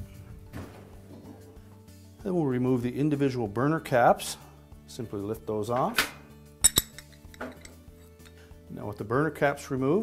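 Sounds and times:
background music: 0:00.0 - 0:10.0
metal burner caps clinking: 0:06.6 - 0:08.4.

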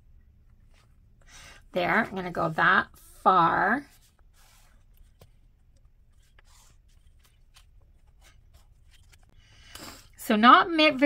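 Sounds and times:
marker drawing on paper: 0:01.9 - 0:05.3, 0:06.1 - 0:07.7.

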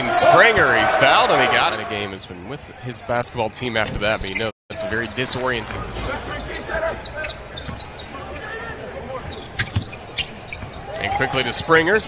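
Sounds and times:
sneaker squeaks: 0:06.3 - 0:08.5, 0:09.1 - 0:11.7.

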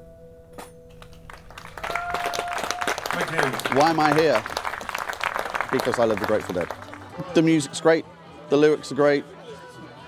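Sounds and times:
audience clapping: 0:01.0 - 0:07.3.

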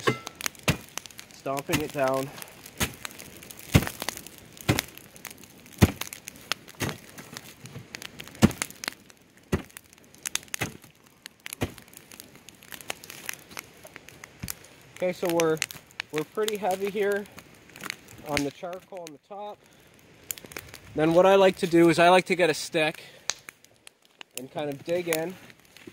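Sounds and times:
metal blade crunching charcoal: 0:00.0 - 0:05.0, 0:05.7 - 0:06.2, 0:06.8 - 0:07.3
fire crackling: 0:00.0 - 0:25.9.

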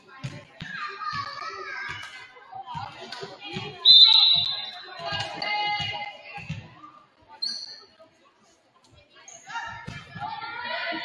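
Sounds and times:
girls calling and shouting: 0:00.0 - 0:08.2, 0:08.9 - 0:11.0.

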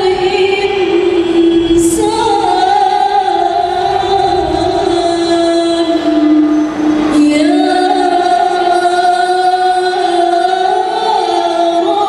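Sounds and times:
girls singing in unison: 0:00.0 - 0:12.0.

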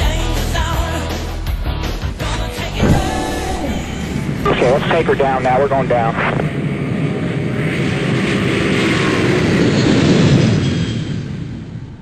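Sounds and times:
propeller aircraft engine running: 0:02.8 - 0:12.0.

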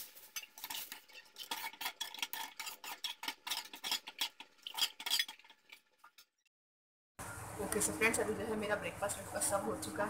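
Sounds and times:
metal spoon scraping a metal pan: 0:00.0 - 0:06.3.

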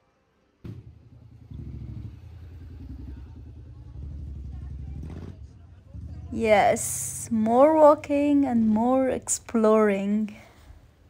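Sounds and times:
small engine chugging: 0:00.7 - 0:07.1.

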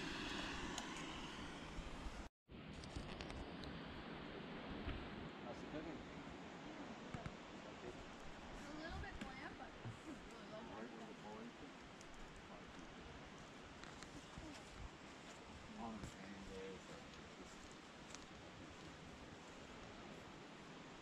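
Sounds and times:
steady outdoor hiss: 0:00.0 - 0:21.0.

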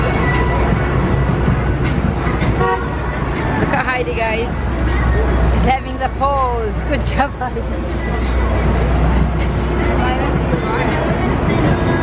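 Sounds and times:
city traffic rumble: 0:00.0 - 0:12.0
music playing: 0:00.0 - 0:12.0.

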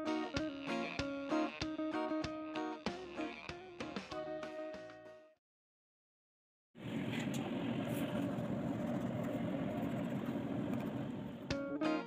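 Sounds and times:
low hum and rumble: 0:06.8 - 0:11.5.

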